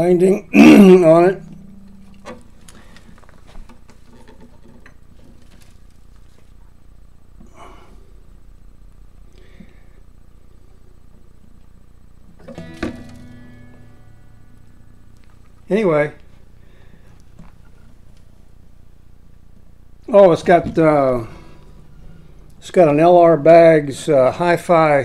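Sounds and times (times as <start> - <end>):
guitar strings ringing: 0.0 - 3.2, 12.4 - 16.2, 20.1 - 25.0
guitar handling rustles: 1.0 - 6.9, 12.4 - 18.6, 20.2 - 24.7.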